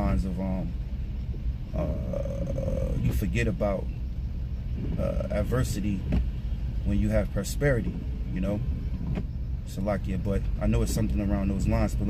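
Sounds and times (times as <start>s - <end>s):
low rumble: 0.0s - 12.0s
man saying uh: 1.8s - 3.8s.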